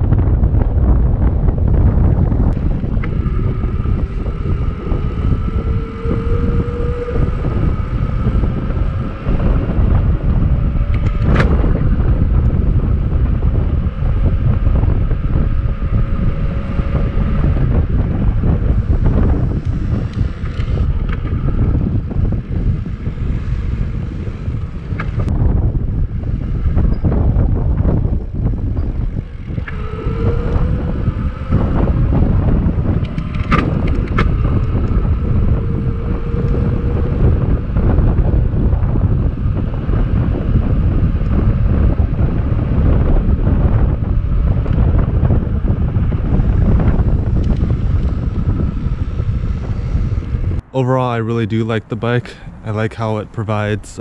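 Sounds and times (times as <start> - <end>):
faint rising whine: 0.0 - 54.0
wind buffeting microphone: 0.0 - 54.0.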